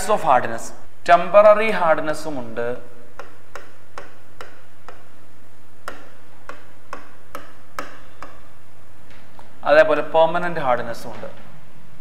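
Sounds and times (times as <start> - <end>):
steady low hum: 0.0 - 10.8
marker pen clicking on board: 3.1 - 5.2, 5.8 - 8.6.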